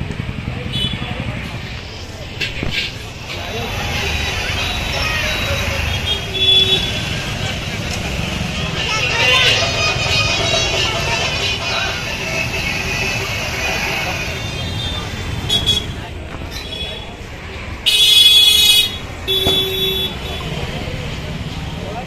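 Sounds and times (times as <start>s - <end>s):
traffic: 0.0s - 22.0s
babble of voices: 0.2s - 17.8s
vehicle horns tooting: 2.6s - 7.7s, 8.8s - 16.0s, 17.8s - 20.6s.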